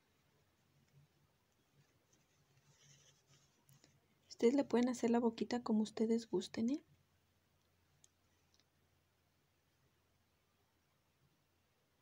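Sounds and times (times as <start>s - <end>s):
thread rustling through fabric: 0.0s - 5.4s.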